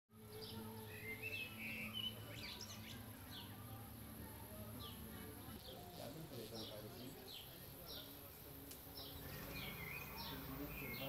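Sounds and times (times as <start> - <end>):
small birds chirping: 0.1 - 11.0.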